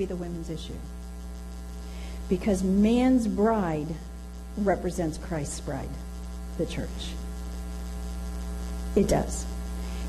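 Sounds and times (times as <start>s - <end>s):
electrical mains hum: 0.0s - 10.0s
person speaking: 9.0s - 9.4s.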